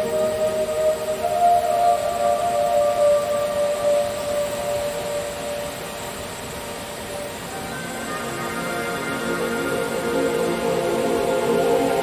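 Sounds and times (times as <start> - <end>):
ambient meditation music: 0.0 - 12.0.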